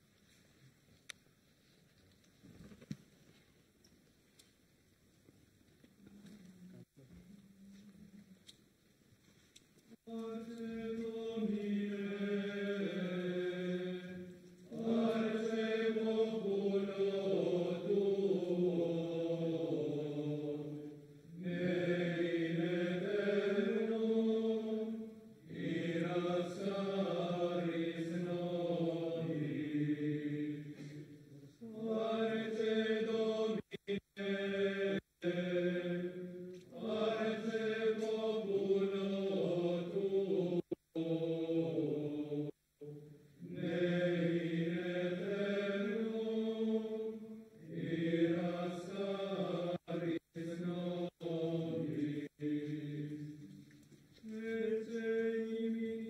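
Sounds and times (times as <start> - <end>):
men chanting a hymn: 10.1 - 53.4, 54.2 - 56.0.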